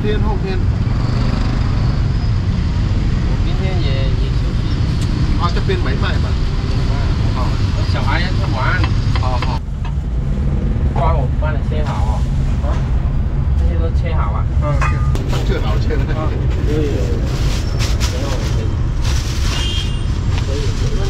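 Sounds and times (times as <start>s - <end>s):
people talking: 0.0s - 0.6s, 13.6s - 17.4s, 18.0s - 18.8s, 20.4s - 21.0s
car and motorbike engines passing: 0.0s - 17.4s
road traffic rumble: 0.0s - 21.0s.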